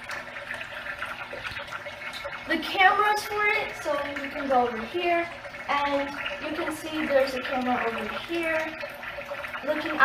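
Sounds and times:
water trickling into fish tank: 0.0 - 10.0.

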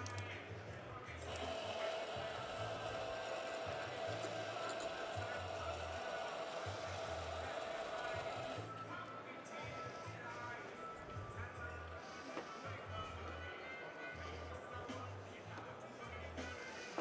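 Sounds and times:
electric coffee grinder running: 1.3 - 8.6.

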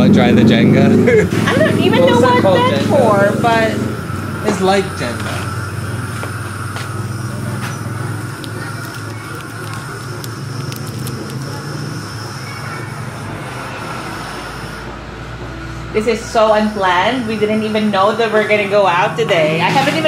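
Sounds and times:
faint voices: 5.0 - 13.5.

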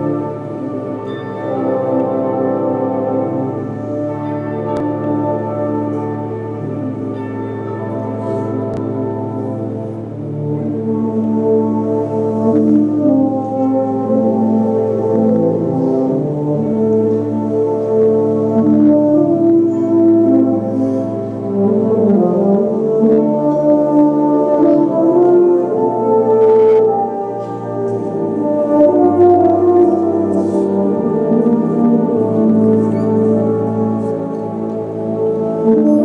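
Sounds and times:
brass band playing chords: 0.0 - 36.0.

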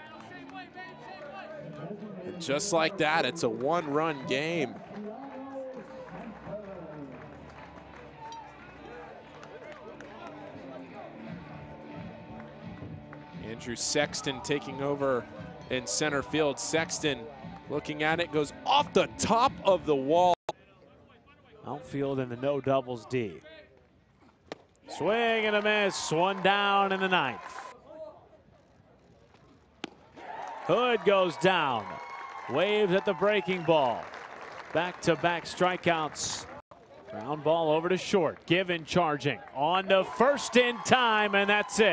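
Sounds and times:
crowd chatter: 0.0 - 12.6
faint ballpark background: 0.0 - 41.9.

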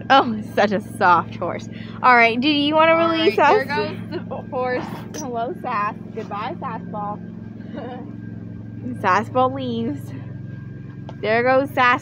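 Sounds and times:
engine idling hum: 0.0 - 12.0.

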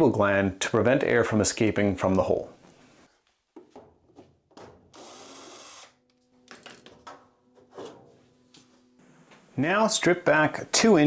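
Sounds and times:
cordless drill whirring: 5.0 - 6.0
faint steady hum: 5.0 - 11.0.

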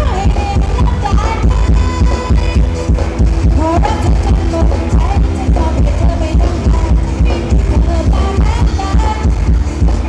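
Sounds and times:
heavy bass drum beat: 0.0 - 10.0
live dance band over loudspeakers: 0.0 - 10.0.

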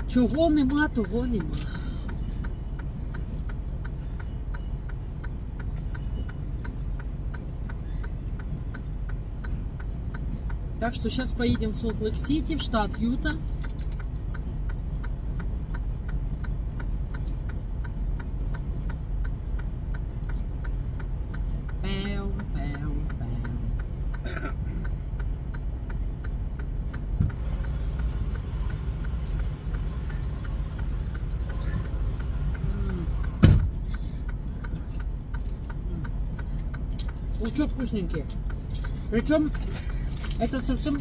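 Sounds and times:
rapid light ticking: 0.0 - 41.0
truck engine idling: 0.0 - 41.0.

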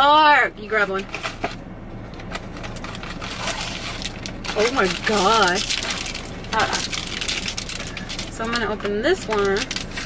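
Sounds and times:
cardboard packaging rustling: 1.0 - 10.0.

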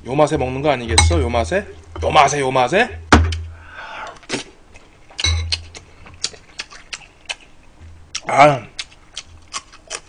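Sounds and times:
wet chewing mouth clicks: 4.1 - 10.0.

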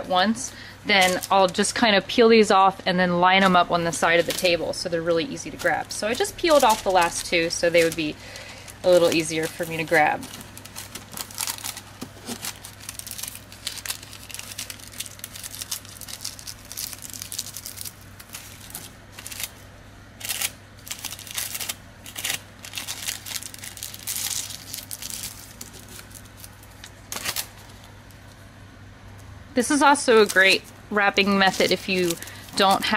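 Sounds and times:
wax paper crinkling: 0.0 - 2.0, 3.4 - 28.4, 29.8 - 32.9.

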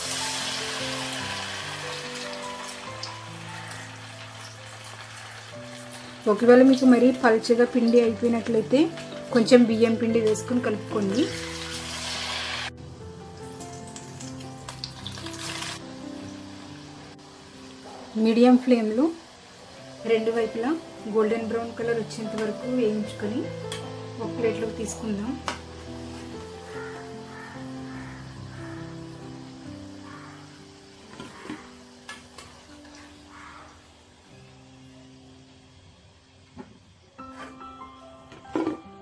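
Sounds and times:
food deep-frying in oil: 0.0 - 12.7, 13.3 - 26.2
soft instrumental music: 0.0 - 39.0.

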